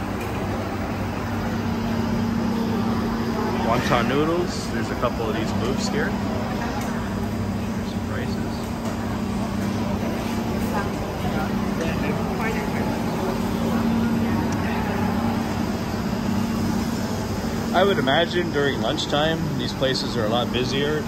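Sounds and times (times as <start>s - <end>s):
faint voices of diners: 0.0s - 21.0s
steady low hum: 0.0s - 21.0s.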